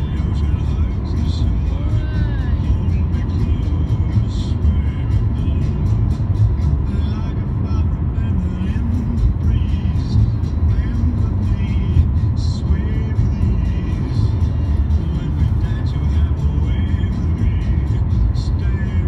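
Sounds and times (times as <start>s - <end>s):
car cabin road noise: 0.0s - 19.0s.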